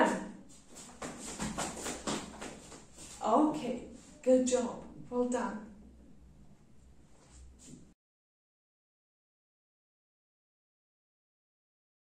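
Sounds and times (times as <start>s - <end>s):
children's feet running on floor: 0.0s - 3.4s.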